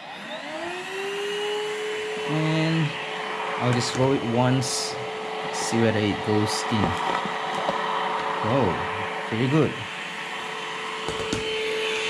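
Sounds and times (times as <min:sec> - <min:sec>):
stick vacuum whining: 0:00.0 - 0:12.0.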